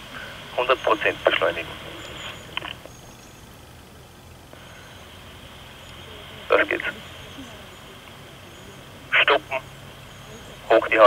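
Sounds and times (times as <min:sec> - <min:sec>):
faint steady hum: 0:00.0 - 0:11.0
man speaking over radio: 0:00.4 - 0:02.8, 0:06.0 - 0:09.7, 0:10.3 - 0:11.0.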